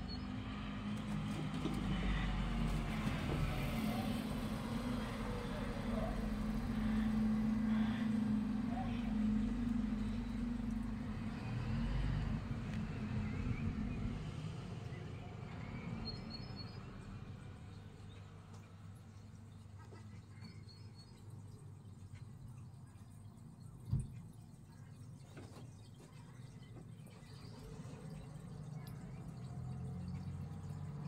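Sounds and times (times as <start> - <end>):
truck engine droning: 1.7 - 16.0.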